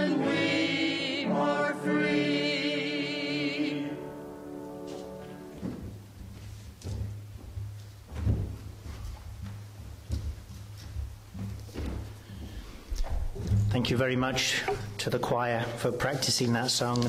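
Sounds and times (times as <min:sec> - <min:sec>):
choir singing chord: 0:00.0 - 0:05.7
footsteps thumping on platform: 0:05.6 - 0:13.8.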